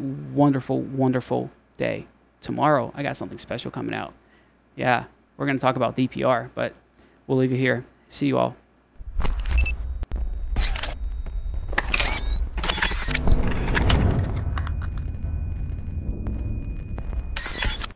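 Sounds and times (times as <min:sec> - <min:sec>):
sharp glitchy hits: 0:09.6 - 0:17.9
deep bass rumble: 0:13.0 - 0:17.6.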